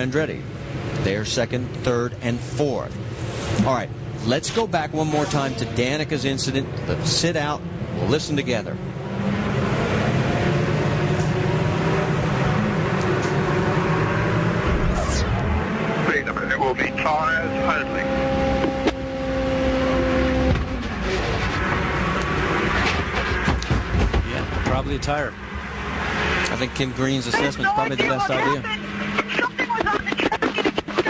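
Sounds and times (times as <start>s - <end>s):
deep tire rumble: 0.3s - 27.2s
race car engine running: 5.3s - 31.0s.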